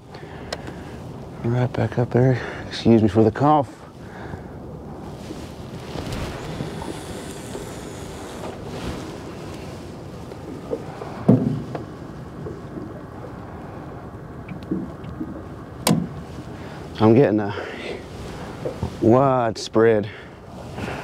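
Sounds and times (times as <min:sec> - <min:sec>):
wind noise on microphone: 0:04.4 - 0:14.1
sharp knock: 0:15.8 - 0:16.1.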